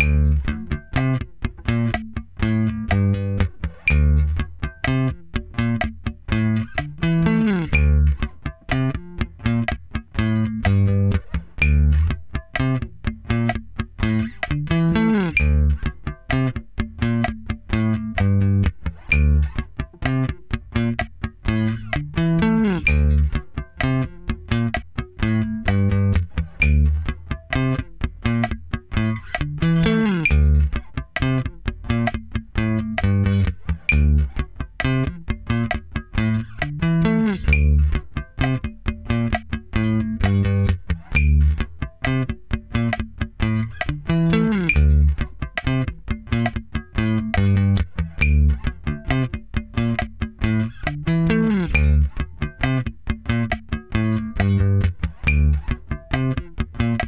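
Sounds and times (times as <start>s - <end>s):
electric bass riff played with pick: 0.0s - 57.0s.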